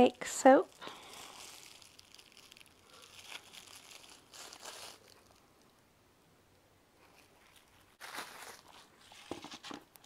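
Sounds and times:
bubble wrap crinkling: 0.0s - 5.8s, 7.0s - 10.0s.

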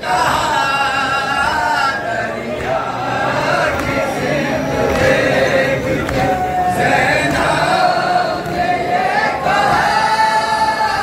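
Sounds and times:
voices chanting a lament: 0.0s - 11.0s.

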